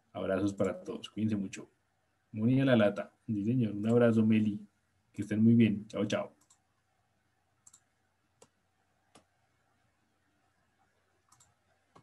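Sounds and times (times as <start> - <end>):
computer mouse clicks: 6.4 - 6.7, 7.6 - 9.4, 11.2 - 12.0.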